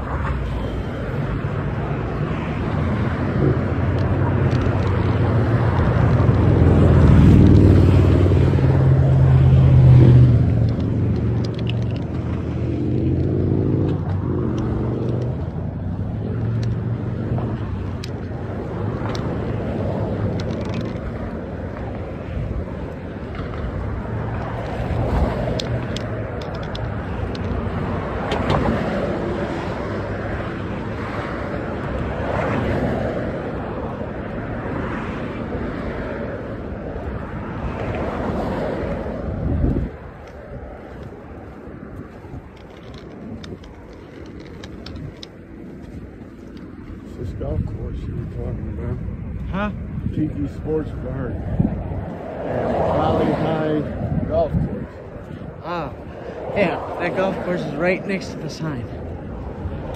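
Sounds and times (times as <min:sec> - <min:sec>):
road traffic passing: 0:00.0 - 0:59.9
vehicle engine hum: 0:00.0 - 0:59.9.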